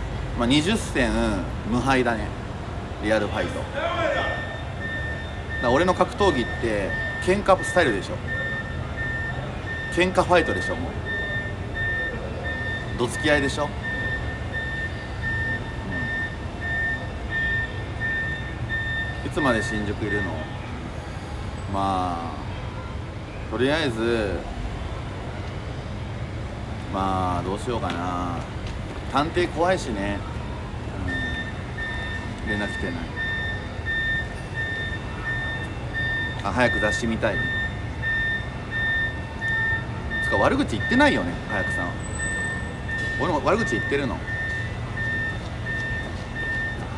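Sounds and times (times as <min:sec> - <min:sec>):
electronic warning beeps: 0:04.2 - 0:20.6, 0:30.2 - 0:46.9.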